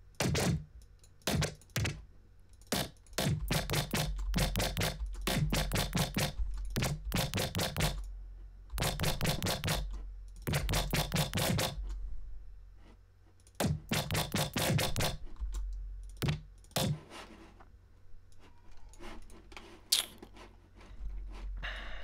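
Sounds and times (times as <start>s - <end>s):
low steady hum: 0.0s - 14.0s, 14.8s - 22.0s
keyboard and mouse clicks: 2.6s - 8.1s, 13.5s - 17.0s.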